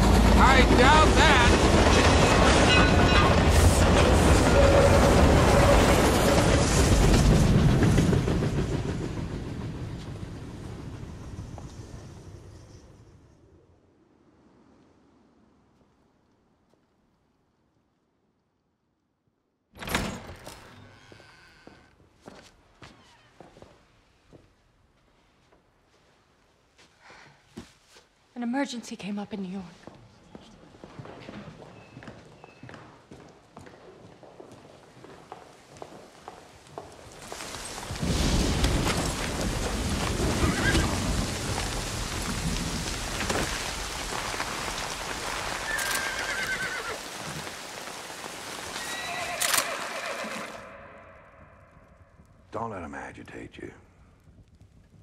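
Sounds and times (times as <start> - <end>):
steady rain: 0.0 - 12.6, 34.7 - 55.0
faint footsteps: 21.1 - 28.4, 29.4 - 40.2
horse whinnying: 40.3 - 41.0, 45.6 - 47.0, 48.8 - 51.0.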